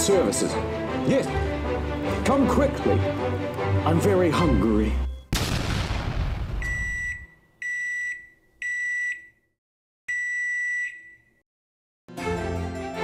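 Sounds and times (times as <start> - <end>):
explosion rumble: 5.3 - 7.2.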